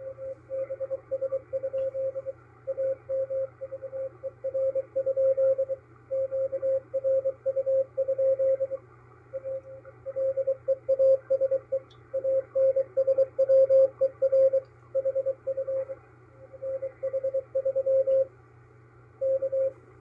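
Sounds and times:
morse code tone: 0:00.0 - 0:08.8, 0:09.4 - 0:16.0, 0:16.6 - 0:18.3, 0:19.2 - 0:19.8
low hum: 0:00.0 - 0:20.0.

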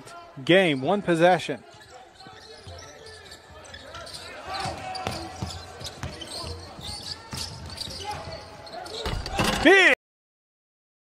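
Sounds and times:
faint players' voices echoing: 0:00.0 - 0:09.9
shoe squeaks: 0:01.6 - 0:09.2.

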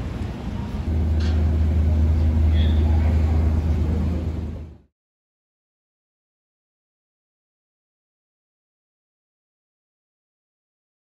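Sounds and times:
vehicle engine drone: 0:00.0 - 0:04.9.

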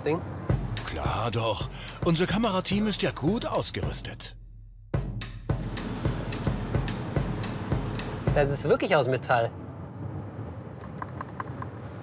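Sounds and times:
low cabin hum: 0:00.5 - 0:04.3, 0:04.9 - 0:08.9.

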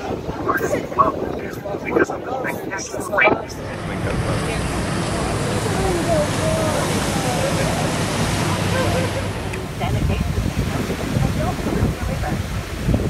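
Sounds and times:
faint voices: 0:00.0 - 0:13.0
water rushing past boat: 0:00.0 - 0:13.0
wind buffeting microphone: 0:00.0 - 0:13.0.

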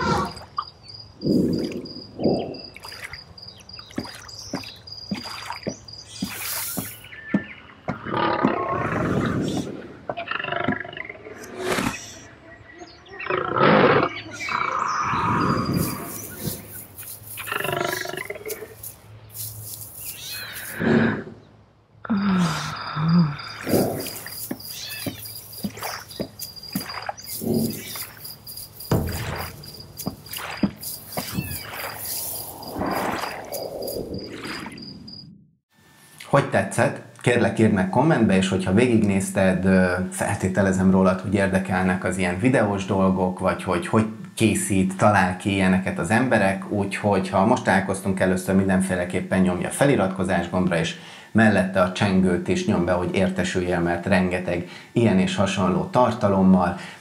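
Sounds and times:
wild animal calls: 0:00.0 - 0:00.5, 0:01.2 - 0:03.0, 0:07.9 - 0:16.8, 0:17.4 - 0:18.8, 0:20.1 - 0:28.2, 0:29.0 - 0:34.6
high insect chirping: 0:00.0 - 0:07.7, 0:14.4 - 0:20.8, 0:22.1 - 0:35.4
big cat roars: 0:08.0 - 0:11.5
impacts: 0:23.6 - 0:35.2
whooshes: 0:30.3 - 0:34.9.

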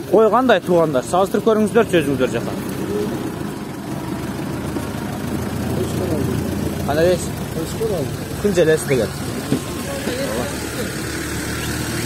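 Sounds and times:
vehicle engine idling: 0:00.0 - 0:12.0.

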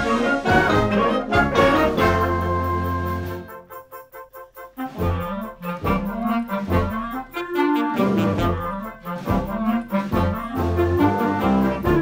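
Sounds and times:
wind band playing: 0:00.0 - 0:12.0.

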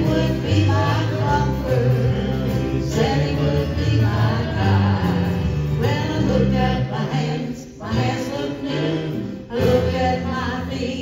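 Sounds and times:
church band playing: 0:00.0 - 0:11.0
people singing gospel song: 0:00.0 - 0:11.0.

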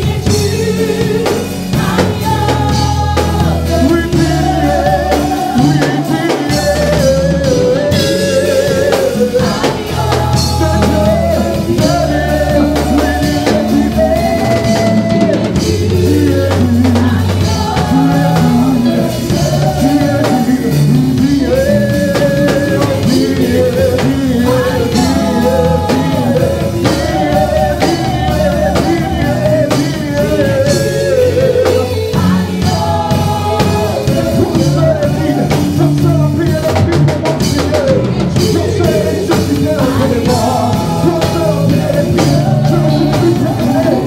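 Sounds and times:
bass notes: 0:00.0 - 0:44.0
drum kit playing: 0:00.0 - 0:44.0
gospel worship band music: 0:00.0 - 0:44.0
people singing: 0:00.0 - 0:44.0.

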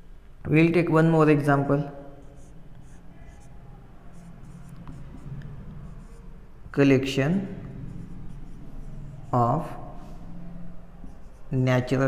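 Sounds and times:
marker scratching on whiteboard: 0:02.2 - 0:06.4, 0:07.5 - 0:10.3, 0:11.0 - 0:12.0.

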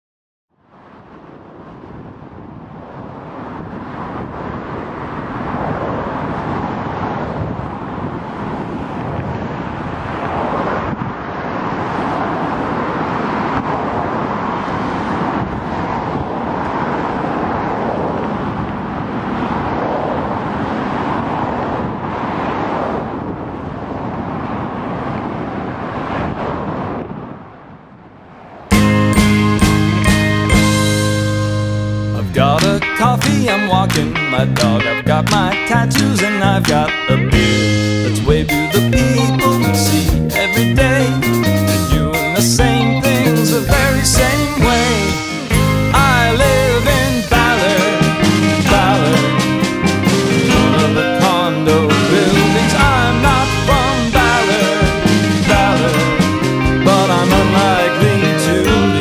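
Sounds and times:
road traffic rush: 0:00.6 - 0:59.0
music: 0:28.7 - 0:59.0.

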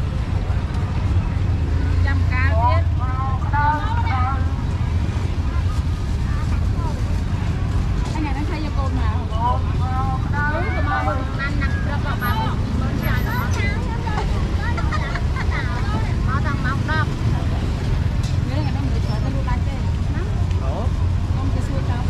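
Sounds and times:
road traffic rumble: 0:00.0 - 0:22.0
people chatting: 0:01.9 - 0:04.6, 0:05.2 - 0:07.4, 0:08.0 - 0:22.0.

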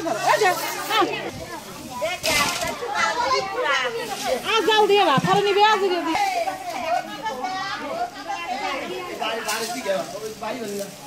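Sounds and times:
children's voices: 0:00.0 - 0:09.6
people talking: 0:00.0 - 0:11.0.

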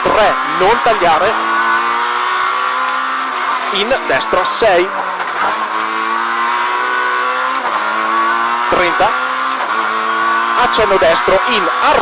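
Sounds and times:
car engine pulling hard under load: 0:01.6 - 0:08.7.

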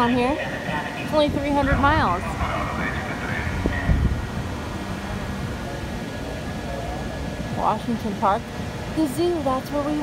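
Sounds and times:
faint distant voices: 0:00.0 - 0:10.0
low rumble of vehicles: 0:00.0 - 0:10.0.

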